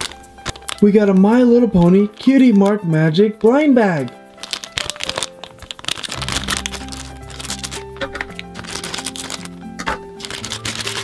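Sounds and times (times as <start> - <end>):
plastic packet crinkling: 0.0 - 11.0
quiet background music: 0.0 - 11.0.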